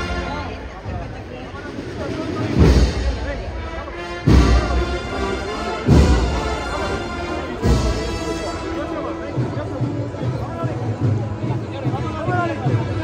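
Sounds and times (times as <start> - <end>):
brass band slow march: 0.0 - 13.0.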